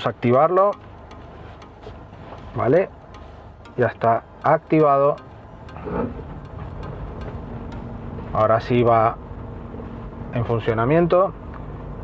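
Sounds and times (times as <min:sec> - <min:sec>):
faint steady hum: 0:00.0 - 0:12.0
low rumble of engine and tyres: 0:00.0 - 0:12.0.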